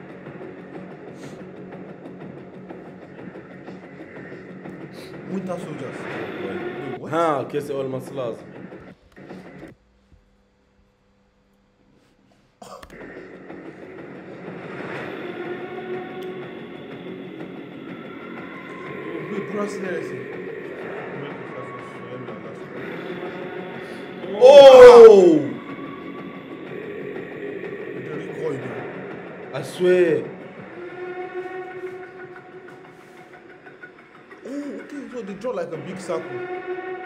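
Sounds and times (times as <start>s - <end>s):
sustained tones: 13.0s - 34.4s.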